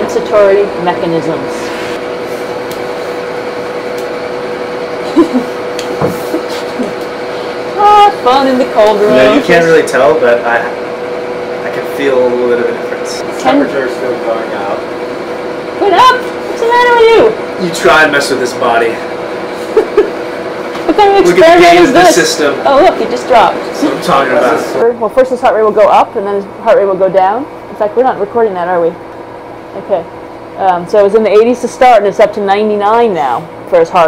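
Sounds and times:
constant hum: 0.0s - 34.0s
air-handling fan whooshing: 1.5s - 24.8s.

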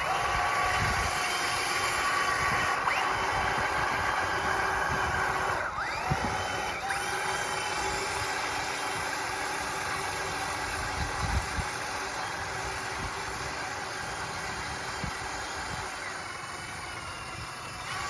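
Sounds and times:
toy car motors whining: 0.0s - 18.0s.

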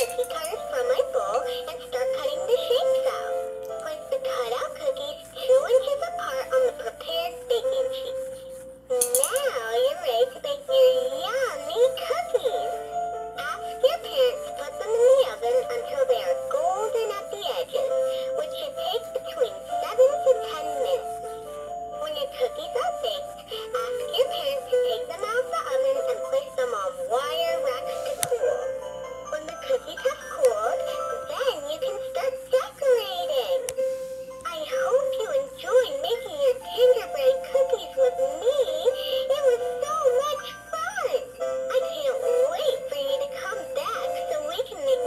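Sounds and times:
toy singing melody: 0.0s - 45.0s.

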